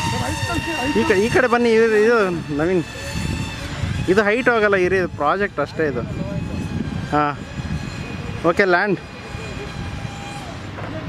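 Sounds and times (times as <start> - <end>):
small electric propeller motor buzzing: 0.0 - 11.0.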